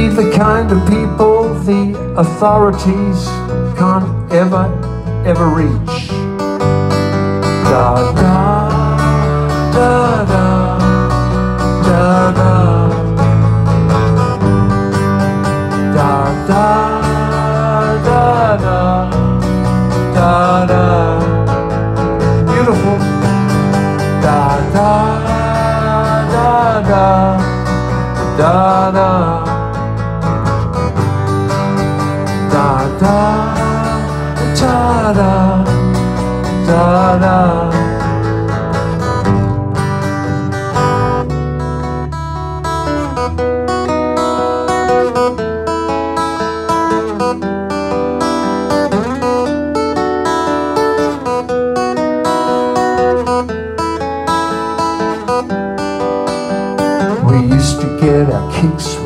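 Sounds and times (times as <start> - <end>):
electric bass: 0.0 - 45.8, 57.2 - 59.0
sliding lead melody: 0.0 - 59.0
strummed acoustic guitar: 0.0 - 59.0.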